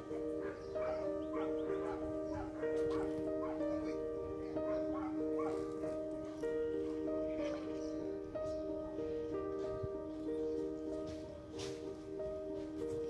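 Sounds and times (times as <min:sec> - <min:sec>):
background music with held chords: 0:00.0 - 0:13.0.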